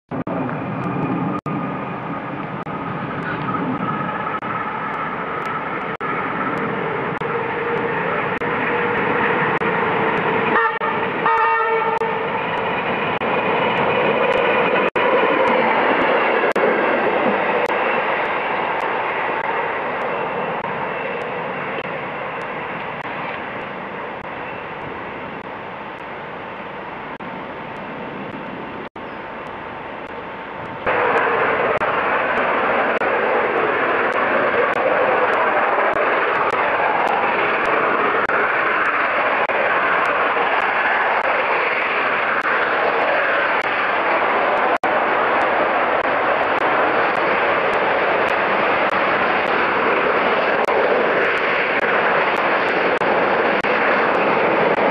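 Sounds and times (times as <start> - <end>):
diesel train running past: 0.1 - 54.9
steam locomotive rushing past: 0.1 - 54.9
diesel locomotive horn: 10.5 - 12.2.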